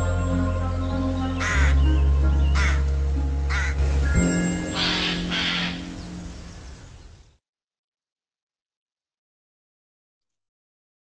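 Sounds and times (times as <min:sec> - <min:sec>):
low droning bass: 0:00.0 - 0:05.3
ambient synth music: 0:00.0 - 0:07.1
harsh crow caws: 0:02.6 - 0:02.8, 0:03.5 - 0:03.8, 0:04.8 - 0:05.9.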